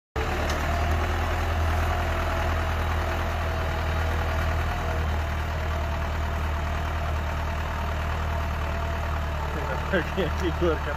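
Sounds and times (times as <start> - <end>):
tractor engine running under load: 0.2 - 10.9.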